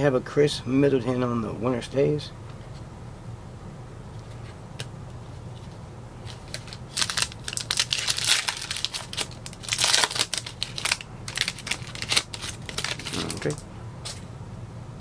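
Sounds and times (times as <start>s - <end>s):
foil wrapper crinkling and tearing: 6.2s - 13.6s.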